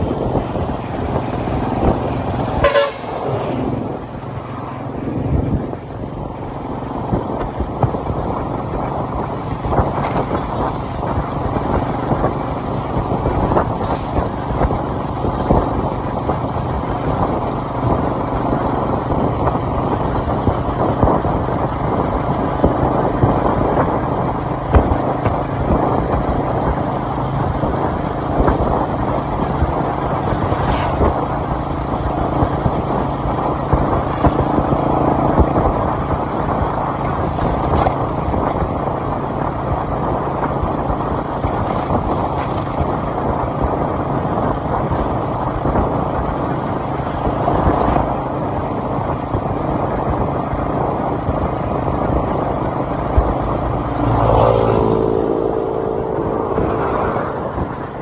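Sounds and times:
motorcycle engine running: 0.0 - 58.0
road and wind noise: 0.0 - 58.0.

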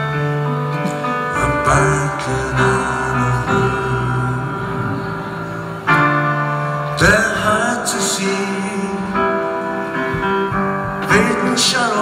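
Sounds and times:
live band held chords: 0.0 - 12.0
person singing: 0.8 - 5.8, 6.8 - 10.2, 10.8 - 12.0.

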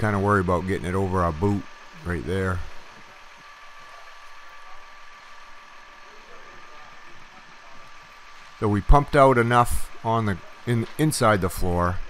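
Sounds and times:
thin high whine: 0.0 - 12.0.

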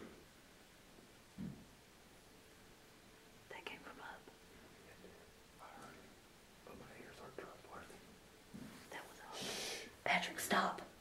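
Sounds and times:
person whispering: 3.5 - 4.3, 5.6 - 6.1.

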